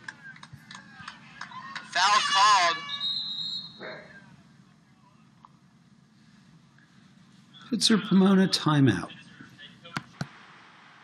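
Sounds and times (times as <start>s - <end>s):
referee's whistle: 2.2s - 3.9s.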